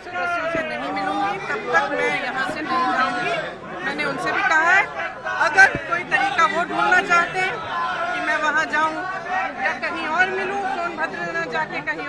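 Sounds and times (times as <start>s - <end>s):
crowd of people talking: 0.0s - 12.0s.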